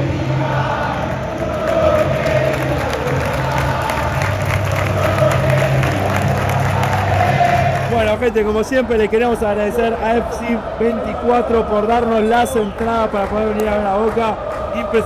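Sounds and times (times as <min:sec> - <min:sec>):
roar of crowd voices: 0:00.0 - 0:08.2
crowd chanting in unison: 0:00.0 - 0:15.0.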